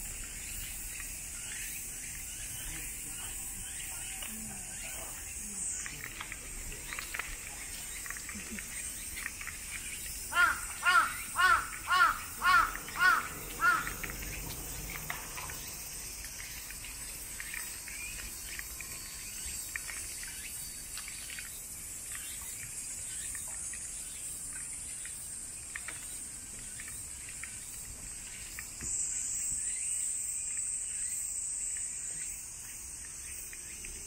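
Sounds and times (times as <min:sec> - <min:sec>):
insects droning: 0:00.0 - 0:34.0
crow cawing: 0:10.3 - 0:14.4.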